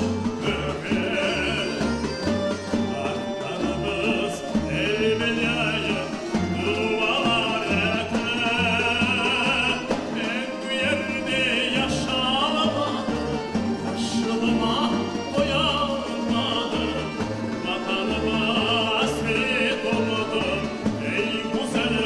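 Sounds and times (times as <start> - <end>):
accordion: 0.0 - 22.0
double bass: 0.0 - 22.0
man singing with vibrato: 0.0 - 22.0.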